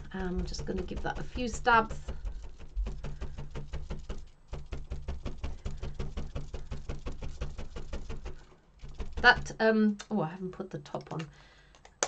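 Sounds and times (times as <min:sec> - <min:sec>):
felting needles stabbing into wool: 0:00.0 - 0:10.1.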